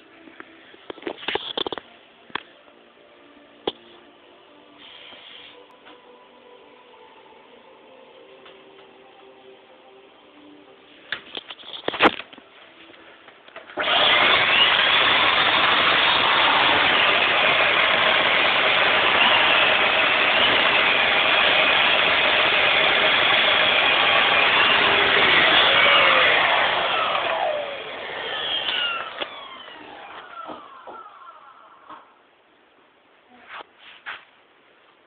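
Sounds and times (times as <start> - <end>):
vacuum cleaner running: 13.8 - 32.0.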